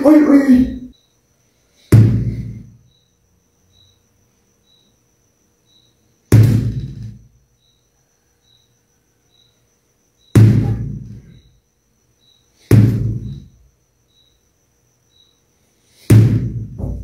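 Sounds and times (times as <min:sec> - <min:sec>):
mallet thudding on watermelon: 0:01.9 - 0:02.3, 0:06.3 - 0:06.9, 0:10.4 - 0:11.0, 0:12.7 - 0:13.4, 0:16.1 - 0:17.0.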